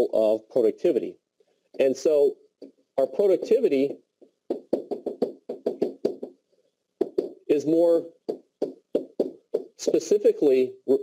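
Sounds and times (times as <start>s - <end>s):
pen knocking on whiteboard: 2.6s - 6.4s, 7.0s - 7.6s, 8.2s - 9.8s.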